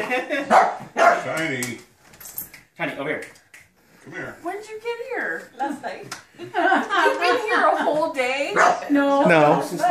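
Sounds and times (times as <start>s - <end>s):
dog barking and yipping: 0.5s - 1.3s, 8.6s - 8.9s
women's voices: 4.6s - 9.9s.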